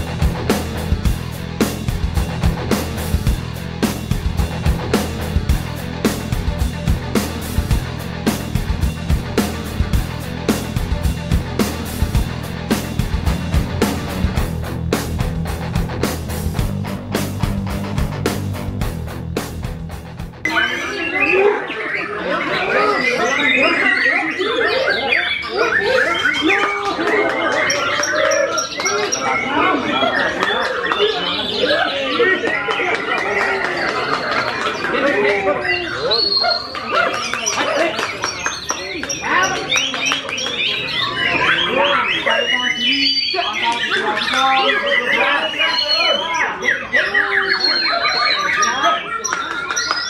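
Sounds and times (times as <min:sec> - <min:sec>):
people talking: 0:20.4 - 0:50.0
birds singing whistles: 0:20.5 - 0:50.0.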